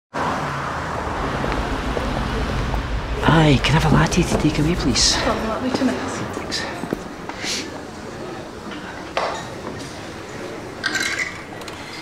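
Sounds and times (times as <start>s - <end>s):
road traffic rumble: 0.1s - 12.0s.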